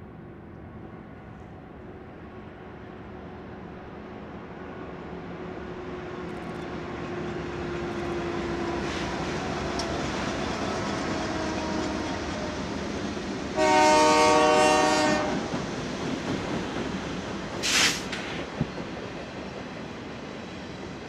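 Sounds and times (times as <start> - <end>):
diesel locomotives rumbling past: 0.0 - 21.0
locomotive air horn blast: 13.6 - 15.4.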